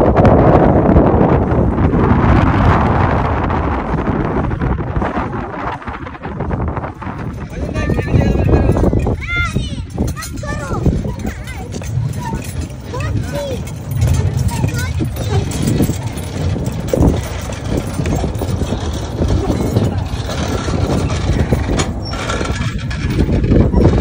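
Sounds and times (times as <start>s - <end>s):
tram rolling on rails: 0.0s - 24.0s.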